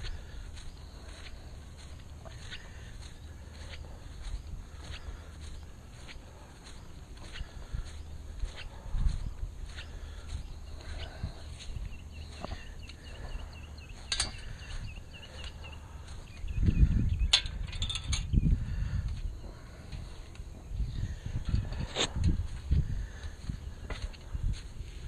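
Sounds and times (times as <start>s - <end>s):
footsteps: 0.0s - 16.9s, 19.0s - 25.0s
metal gate latch clicks: 17.3s - 18.3s.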